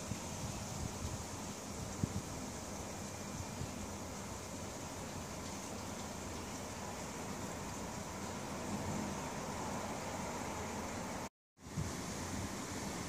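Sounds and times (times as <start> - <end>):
even hiss: 0.0 - 13.0.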